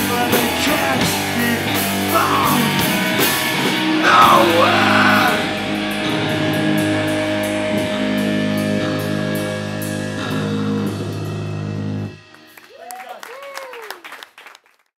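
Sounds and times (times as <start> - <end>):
electric guitars holding a chord: 0.0 - 12.7.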